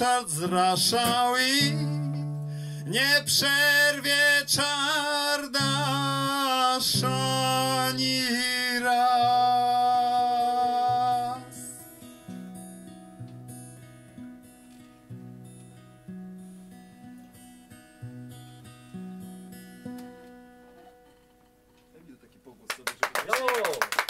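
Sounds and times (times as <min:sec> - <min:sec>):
acoustic guitar plucked: 0:00.0 - 0:22.0.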